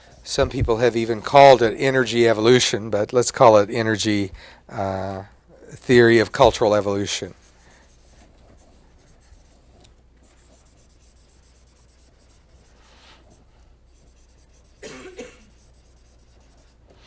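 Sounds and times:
writing scratching on a board: 0:06.0 - 0:17.0
person coughing: 0:14.8 - 0:15.6.

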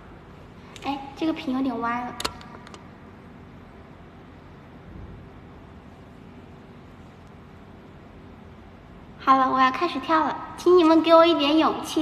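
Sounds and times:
low background noise: 0:00.0 - 0:12.0
woman speaking: 0:00.8 - 0:02.2, 0:09.2 - 0:12.0.

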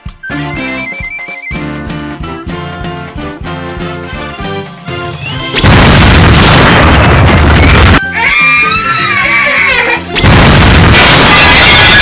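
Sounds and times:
cartoon cannon boom: 0:05.6 - 0:08.0, 0:10.2 - 0:12.0.

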